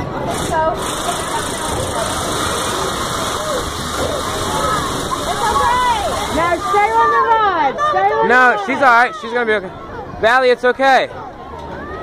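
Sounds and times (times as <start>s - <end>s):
loud mechanical engine noise: 0.0s - 7.2s
faint voices: 0.0s - 12.0s.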